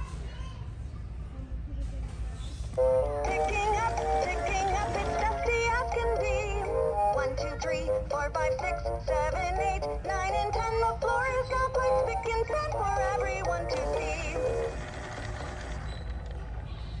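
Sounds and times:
toy synthetic sung counting song: 2.8s - 14.9s.

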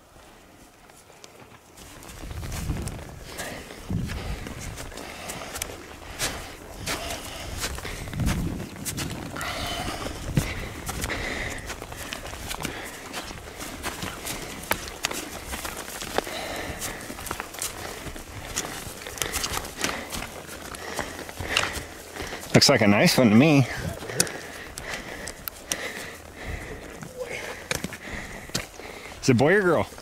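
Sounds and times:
boots crunching on snow and grass: 0.8s - 30.0s
trekking poles striking ground: 0.9s - 30.0s.

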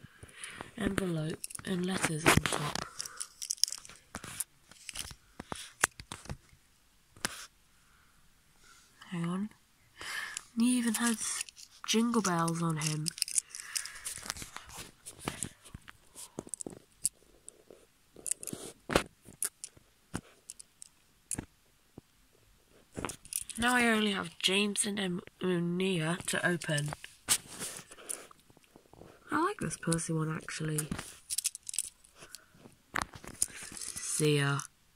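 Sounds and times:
faint rustling: 0.0s - 24.6s, 26.0s - 34.7s
plastic toy handling clicks: 1.3s - 6.3s, 10.3s - 14.6s, 30.6s - 32.4s.

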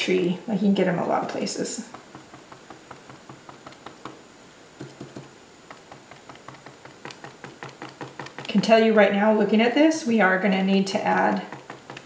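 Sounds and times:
brush tapping on paper: 1.2s - 4.2s, 4.8s - 8.7s, 10.9s - 12.0s.

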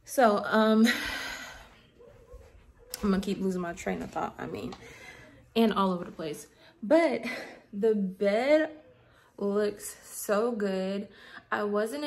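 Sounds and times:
woman speaking: 0.0s - 1.2s, 3.0s - 12.0s.

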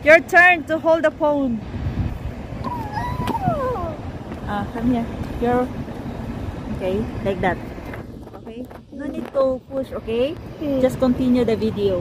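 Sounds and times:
wind noise: 0.0s - 12.0s
child's high-pitched wordless voice: 2.7s - 4.0s.

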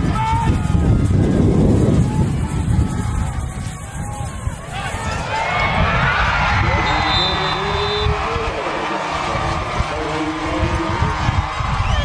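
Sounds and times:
crowd yelling and cheering: 0.0s - 12.0s
referee's whistle: 6.7s - 8.2s.

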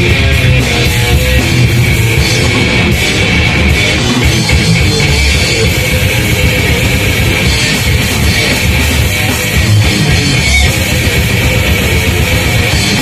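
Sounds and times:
bass guitar: 0.0s - 13.0s
drum kit: 0.0s - 13.0s
electric guitar: 0.0s - 13.0s.

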